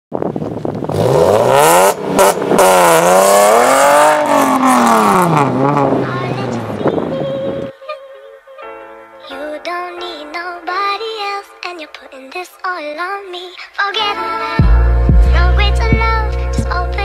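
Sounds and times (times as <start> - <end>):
car engine revving hard: 0.9 - 6.8.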